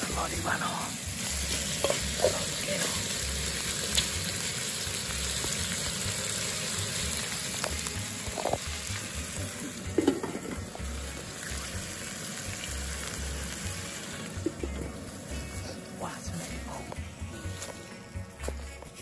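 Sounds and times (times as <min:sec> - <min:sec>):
sauce sizzling in a pot: 0:00.0 - 0:16.0.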